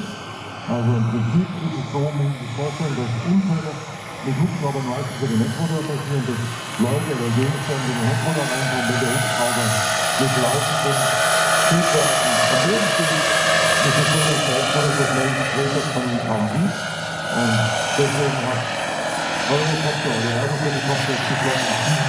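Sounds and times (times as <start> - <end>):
helicopter rotor: 0.0 - 22.0
model helicopter turbine whine: 0.0 - 22.0.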